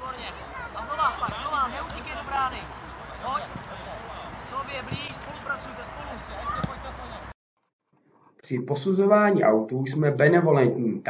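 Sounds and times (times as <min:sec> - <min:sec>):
children shouting: 0:00.2 - 0:04.5, 0:05.6 - 0:07.3
ball being kicked: 0:01.1 - 0:02.1, 0:06.4 - 0:07.0.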